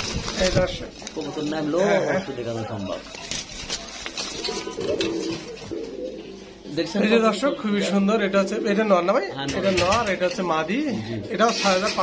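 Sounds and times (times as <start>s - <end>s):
pigeons cooing: 4.2s - 9.2s.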